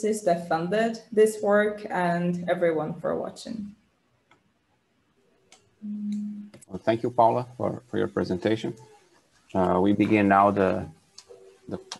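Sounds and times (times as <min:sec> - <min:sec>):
person speaking: 0:05.8 - 0:09.0, 0:09.6 - 0:11.9.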